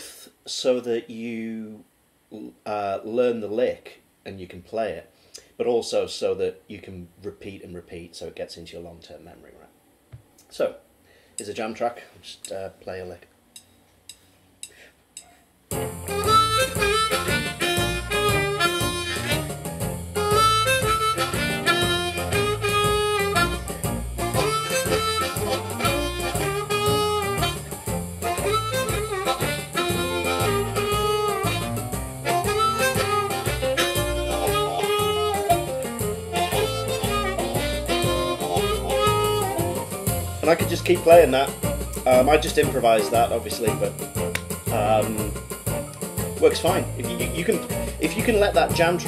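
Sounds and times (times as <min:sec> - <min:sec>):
blues band backing track: 0:15.7 - 0:49.0
harmonica playing blues: 0:15.7 - 0:49.0.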